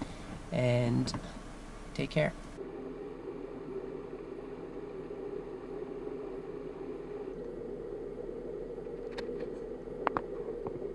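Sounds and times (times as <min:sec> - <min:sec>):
faint clicks: 0:08.8 - 0:10.9.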